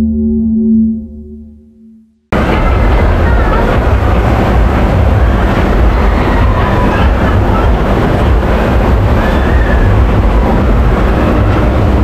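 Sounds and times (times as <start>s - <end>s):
ride boat rumbling on track: 2.3s - 12.0s.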